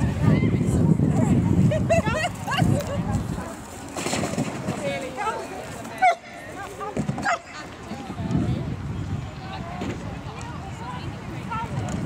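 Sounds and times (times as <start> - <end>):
outdoor background hubbub: 0.0 - 12.0.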